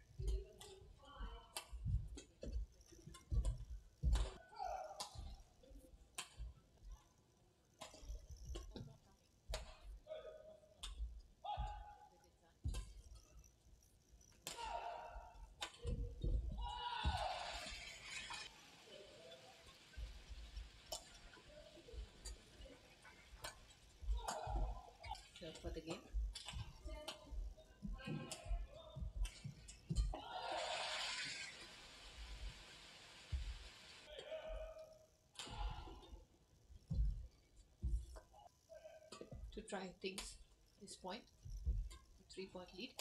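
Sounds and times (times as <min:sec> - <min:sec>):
rackets striking shuttlecock: 0:01.5 - 0:05.5, 0:09.5 - 0:10.0, 0:12.6 - 0:13.4, 0:14.3 - 0:17.2, 0:23.4 - 0:25.4, 0:26.2 - 0:27.4
footsteps thudding on court: 0:36.9 - 0:38.2.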